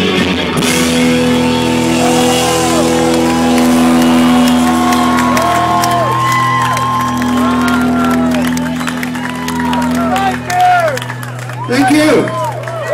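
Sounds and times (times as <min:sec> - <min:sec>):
synthesizer holding a chord: 0:00.4 - 0:11.7
crowd cheering and whooping: 0:00.8 - 0:12.9
scattered claps: 0:02.0 - 0:12.9.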